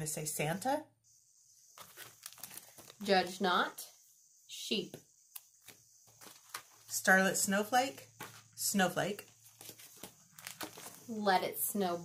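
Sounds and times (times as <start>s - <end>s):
plastic sleeve crinkling: 1.8s - 3.0s, 9.6s - 11.1s.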